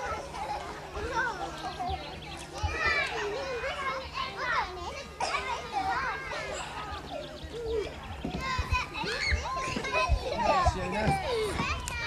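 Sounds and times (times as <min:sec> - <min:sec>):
young children shouting and chattering: 0:00.0 - 0:12.0.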